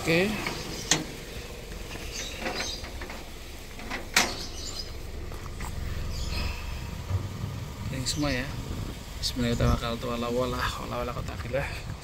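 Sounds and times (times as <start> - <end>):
light rattles: 0.0 - 12.0
vehicle engine running: 0.0 - 12.0.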